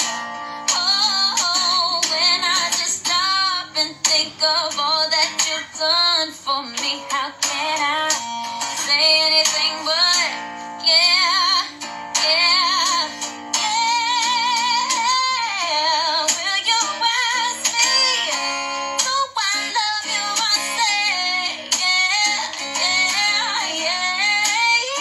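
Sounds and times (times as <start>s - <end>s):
woman singing gospel ballad: 0.7s - 8.2s, 8.8s - 25.0s.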